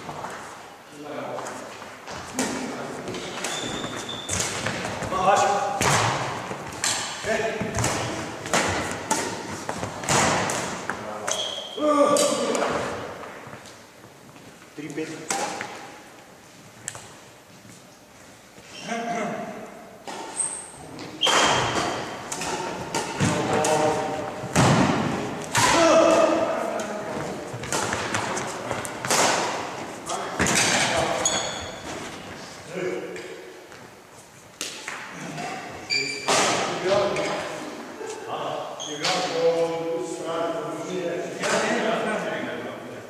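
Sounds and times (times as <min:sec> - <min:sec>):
players' voices: 0:00.9 - 0:13.2, 0:20.8 - 0:33.6
badminton rackets hitting shuttlecock: 0:02.4 - 0:13.0, 0:21.2 - 0:31.8.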